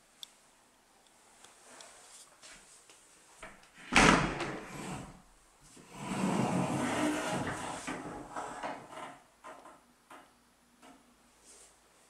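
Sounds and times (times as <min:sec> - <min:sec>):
door rolling on its track: 0:05.9 - 0:09.1.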